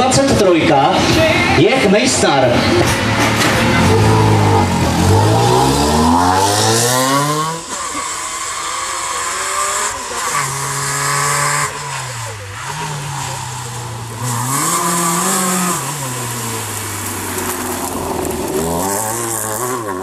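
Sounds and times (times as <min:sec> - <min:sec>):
car engine driving past: 0:02.5 - 0:20.0.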